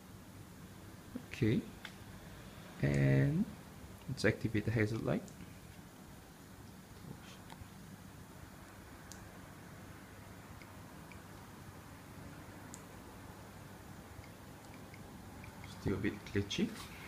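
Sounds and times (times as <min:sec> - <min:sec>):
quiet room hum: 0:00.0 - 0:17.0
faint irregular clicks: 0:14.2 - 0:16.4.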